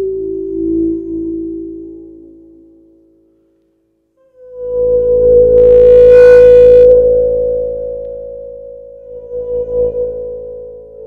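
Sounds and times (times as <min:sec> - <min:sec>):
electronic instrument held tone: 0:04.2 - 0:10.6.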